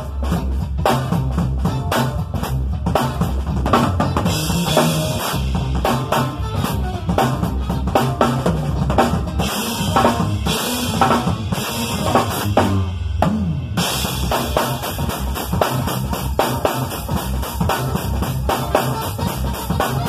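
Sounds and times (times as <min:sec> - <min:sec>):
drum kit played fast: 0:00.0 - 0:20.0
stepping bass line: 0:00.0 - 0:20.0.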